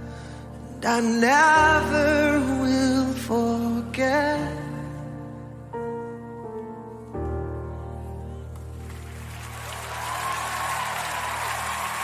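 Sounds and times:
audience applause: 8.6s - 12.0s.

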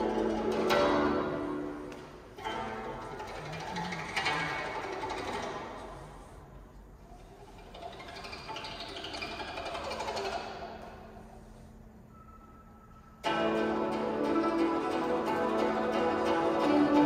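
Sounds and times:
zither plucked strings: 0.0s - 6.0s, 13.2s - 17.0s.

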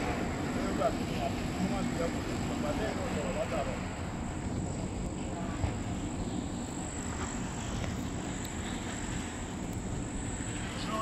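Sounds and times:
crickets trilling: 0.0s - 11.0s
low rumbling noise: 0.0s - 11.0s.

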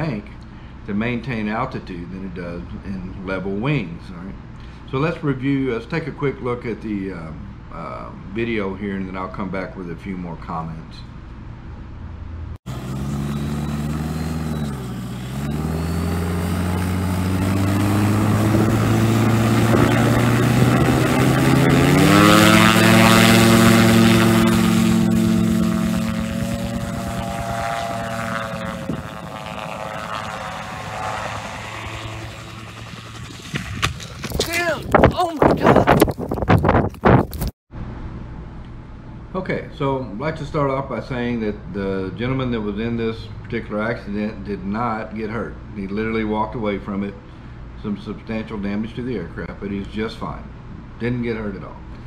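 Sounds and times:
aircraft engine and propeller: 12.7s - 34.6s
wind buffeting microphone: 17.2s - 37.5s.

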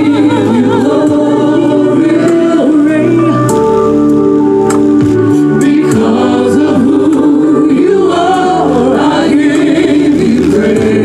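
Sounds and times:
gospel group singing: 0.0s - 3.7s, 5.2s - 11.0s.

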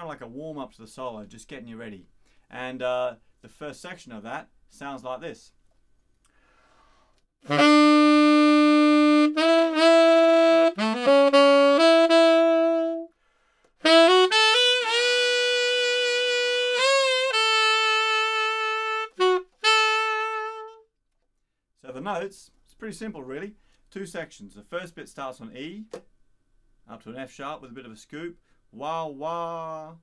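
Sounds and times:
tenor saxophone playing: 7.4s - 13.2s, 13.8s - 20.9s.

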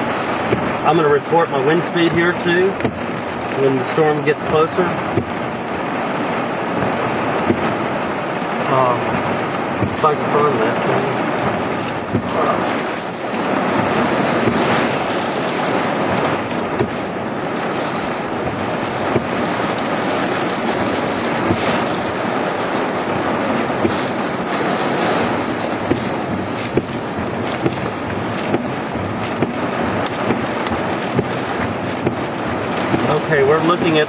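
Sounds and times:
heavy rain rushing hiss: 0.0s - 34.0s
raindrops tapping on glass and metal: 0.0s - 34.0s.

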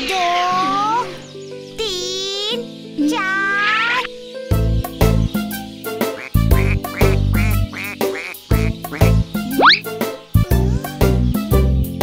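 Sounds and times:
light background music: 0.0s - 12.0s
cartoon duck quacks: 6.1s - 9.9s.

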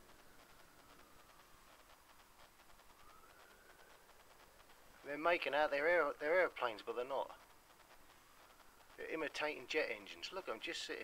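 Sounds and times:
distant jet engine whine: 0.0s - 11.0s.

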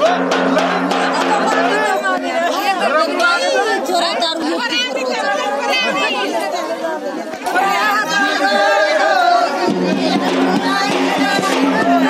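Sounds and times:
women talking and calling out: 0.0s - 12.0s.

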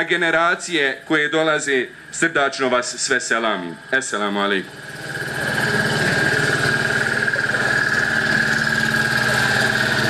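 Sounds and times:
high-pitched whine: 0.0s - 10.0s
small engine running: 0.0s - 10.0s.

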